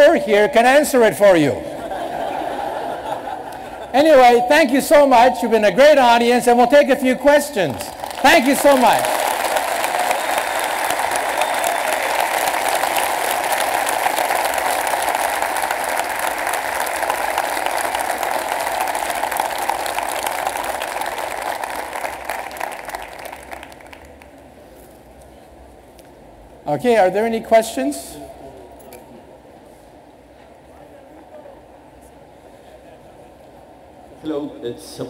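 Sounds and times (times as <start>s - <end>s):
large audience applauding: 7.7s - 24.5s.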